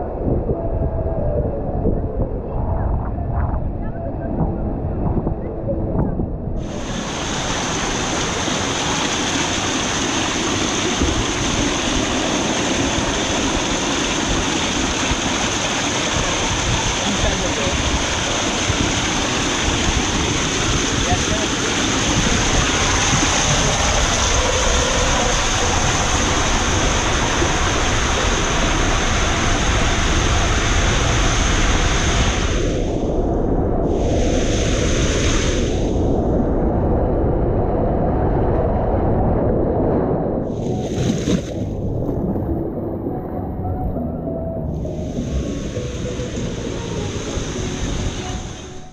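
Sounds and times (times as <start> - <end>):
water rushing in slide tube: 6.6 - 33.2, 33.8 - 36.1, 40.5 - 43.9, 44.7 - 48.9.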